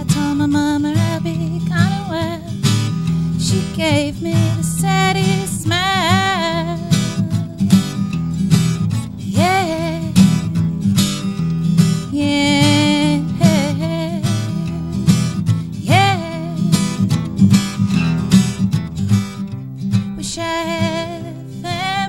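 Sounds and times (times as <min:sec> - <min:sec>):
woman singing folk song: 0:00.0 - 0:17.9, 0:19.9 - 0:22.0
acoustic guitar strumming: 0:00.0 - 0:22.0.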